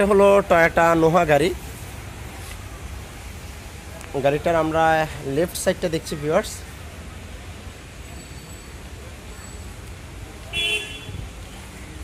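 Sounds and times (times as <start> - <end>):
vehicle horn toot: 10.5 - 11.2.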